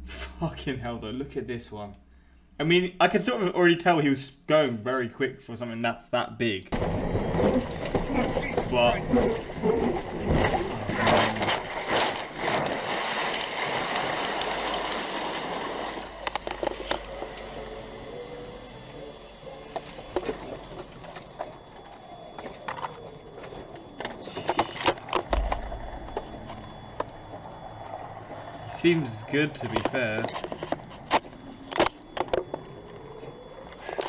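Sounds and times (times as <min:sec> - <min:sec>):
debris knocks and rattles: 0:06.8 - 0:17.3, 0:20.1 - 0:27.9.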